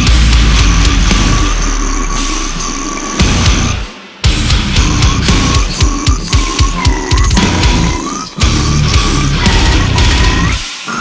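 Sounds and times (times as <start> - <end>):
death metal band playing: 0.0 - 11.0
down-tuned guitars: 0.0 - 11.0
drums: 0.0 - 11.0.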